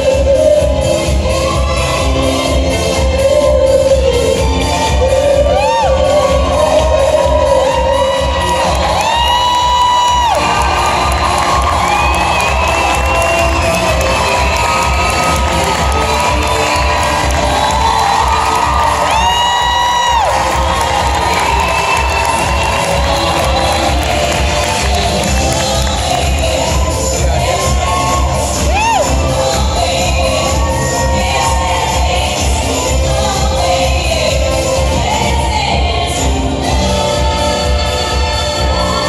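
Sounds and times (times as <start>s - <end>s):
loud music with thumping beat: 0.0s - 39.0s
audience cheering and whooping: 5.4s - 32.4s.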